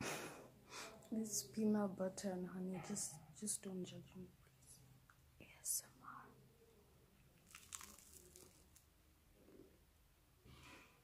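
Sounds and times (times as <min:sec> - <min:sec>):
crunching bite into toast: 0:07.4 - 0:08.8.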